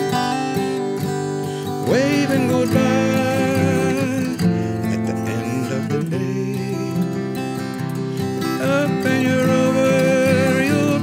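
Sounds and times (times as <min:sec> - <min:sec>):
acoustic guitar playing: 0:00.0 - 0:11.0
man singing: 0:01.5 - 0:07.5, 0:08.1 - 0:11.0.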